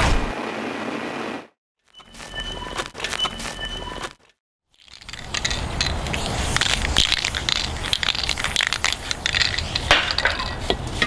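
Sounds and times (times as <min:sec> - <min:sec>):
hissing noise: 0:05.3 - 0:11.0.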